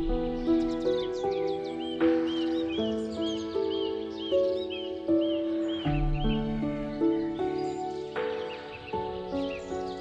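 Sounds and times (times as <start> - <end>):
gentle piano music: 0.0 - 10.0
songbird whistling: 0.0 - 10.0.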